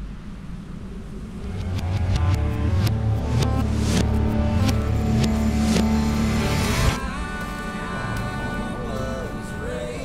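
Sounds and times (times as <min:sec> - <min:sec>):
low rumble: 0:00.0 - 0:10.0
sharp percussive hits: 0:01.5 - 0:08.4
pitched notes: 0:01.6 - 0:10.0.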